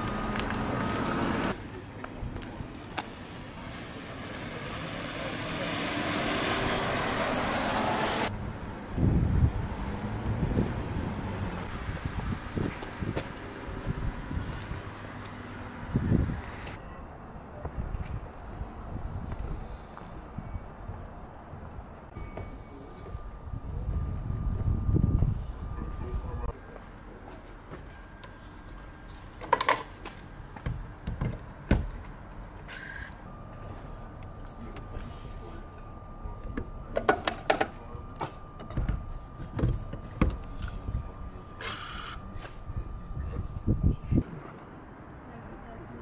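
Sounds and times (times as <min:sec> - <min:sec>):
electric bus whine: 0:00.0 - 0:46.0
low vehicle rumble: 0:00.0 - 0:46.0
outdoor background: 0:00.0 - 0:46.0
street sound: 0:00.0 - 0:46.0.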